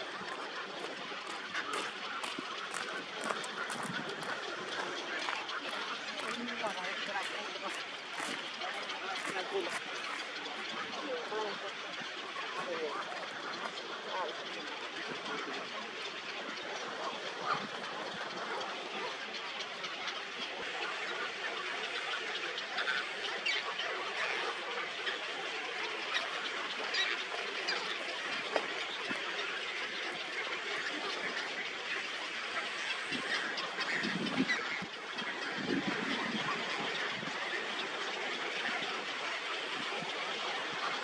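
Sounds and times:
many waterbirds calling: 0.0 - 41.0.

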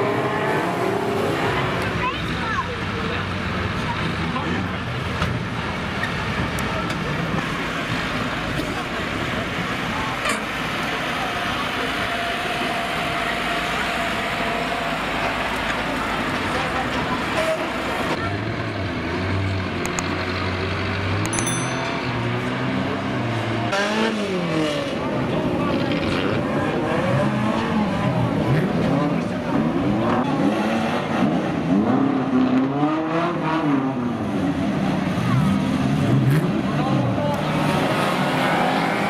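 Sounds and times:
indistinct talking: 0.0 - 18.9
racing engines running: 0.0 - 39.0.

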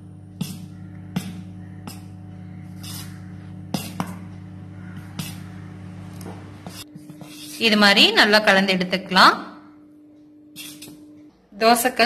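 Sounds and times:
steady low hum: 0.0 - 12.0
metal spoon stirring in steel bowl: 0.4 - 4.3, 5.0 - 5.7, 6.6 - 8.3, 10.5 - 11.0.

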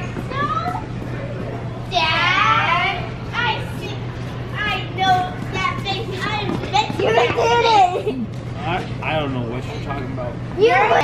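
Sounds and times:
children calling and chattering: 0.0 - 8.5, 9.6 - 11.0
steady low hum: 0.0 - 11.0.

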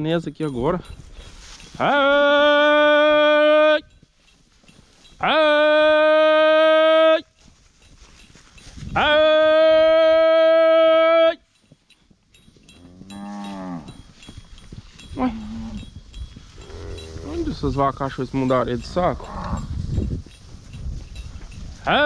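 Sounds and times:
herder calling cattle: 1.8 - 4.0, 5.1 - 7.4, 8.9 - 11.5, 15.0 - 15.9, 16.6 - 19.8, 21.7 - 22.0
cattle mooing: 12.9 - 14.0, 16.6 - 17.5.

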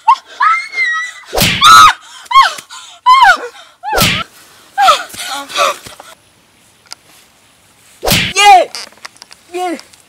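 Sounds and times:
woman screaming in pain: 0.0 - 4.2, 4.8 - 5.8
slap to the face: 1.4 - 1.6, 4.0 - 4.2, 8.1 - 8.4.

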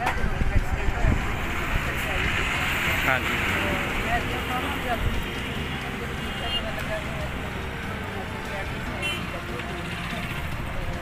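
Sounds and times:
wind rumbling on microphone: 0.0 - 3.0
highway traffic passing: 0.0 - 11.0.

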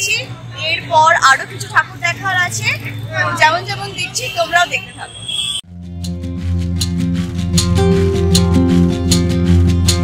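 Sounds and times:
woman talking: 0.0 - 5.2.

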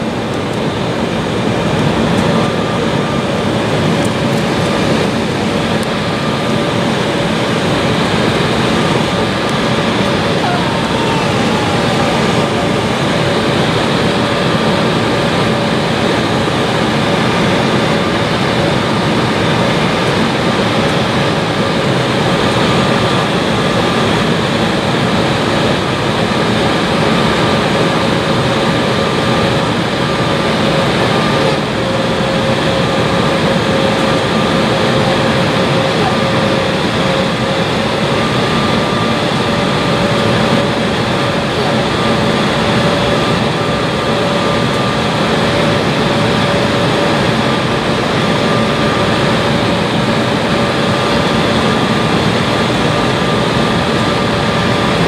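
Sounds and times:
faint high whine: 0.0 - 24.6
airflow rush in cabin: 0.0 - 55.0
mid-pitched hum: 0.0 - 55.0
turbofan engine noise: 0.0 - 55.0.

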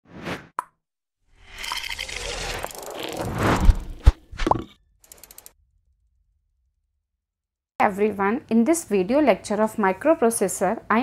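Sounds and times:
noisy sound effect: 1.4 - 4.7.

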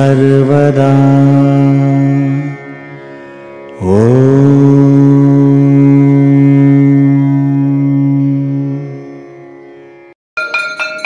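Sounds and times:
mantra chanting: 0.0 - 3.1, 3.7 - 9.2.

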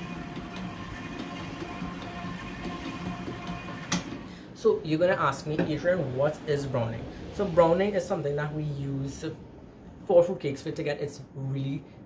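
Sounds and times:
stand mixer motor hum: 0.0 - 4.4.

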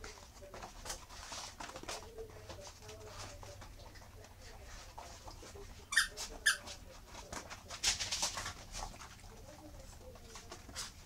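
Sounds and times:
puppies scuffling: 0.0 - 11.0.

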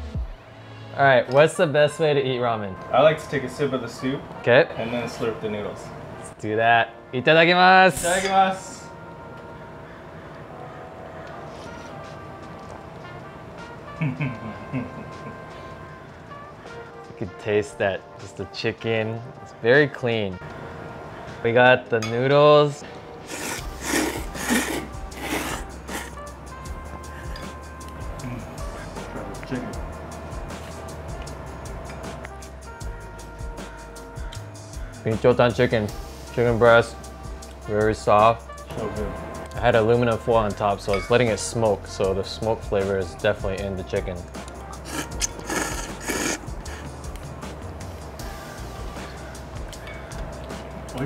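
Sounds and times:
background music: 0.0 - 51.0
slurping noodles: 23.2 - 26.2, 44.8 - 47.0.

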